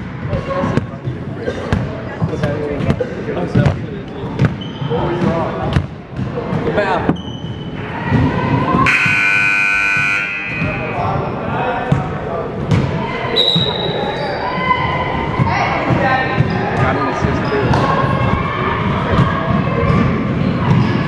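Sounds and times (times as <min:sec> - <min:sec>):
voices in a hall: 0:00.0 - 0:21.0
scoreboard horn: 0:08.8 - 0:10.9.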